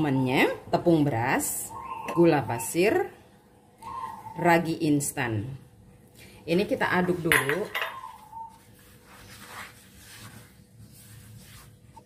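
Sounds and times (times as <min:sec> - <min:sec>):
spatula stirring flour in bowl: 0:06.8 - 0:12.0.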